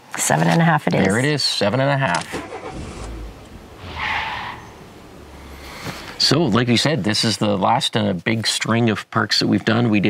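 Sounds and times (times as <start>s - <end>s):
low vehicle rumble: 2.1s - 7.4s
tyre screech: 2.2s - 6.2s.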